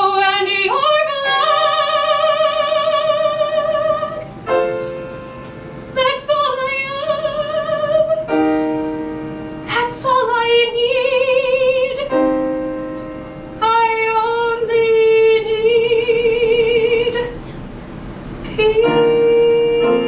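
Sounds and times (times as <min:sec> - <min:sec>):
soprano singing a ballad: 0:00.0 - 0:04.4, 0:05.9 - 0:08.8, 0:09.6 - 0:12.6, 0:13.6 - 0:17.4, 0:18.5 - 0:20.0
piano chords: 0:00.0 - 0:20.0.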